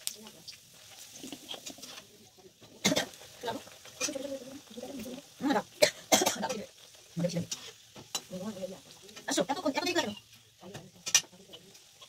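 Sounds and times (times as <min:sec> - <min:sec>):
oil sizzling in a wok: 0:00.0 - 0:12.0.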